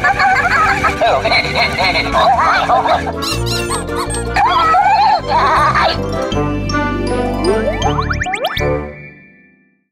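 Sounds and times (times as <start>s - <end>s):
cartoon character giggles: 0.0s - 4.2s
cheerful children's music: 0.0s - 9.9s.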